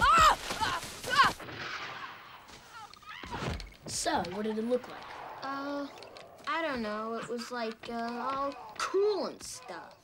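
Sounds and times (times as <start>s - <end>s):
sliding through grass and brush: 0.0s - 2.9s.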